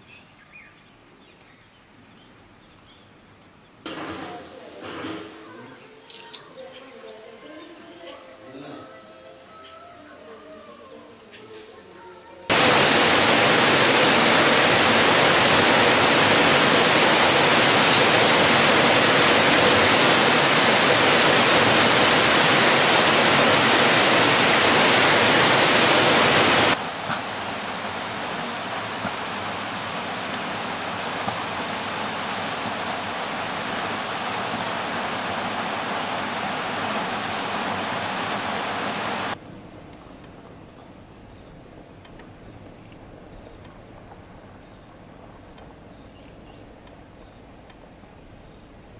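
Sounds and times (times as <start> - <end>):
heavy rain hissing: 3.9 - 6.0, 10.2 - 39.4
waterfall: 12.5 - 39.4.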